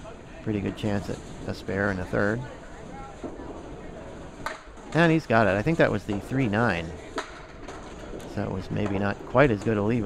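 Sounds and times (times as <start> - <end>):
bowling alley room noise: 0.0 - 10.0
bowling ball rolling down lane: 2.6 - 9.9
pins clacking: 4.4 - 10.0.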